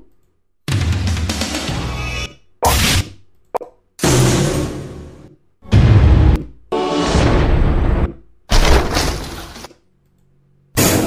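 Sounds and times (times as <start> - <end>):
loud hit sound effect: 4.0 - 9.0.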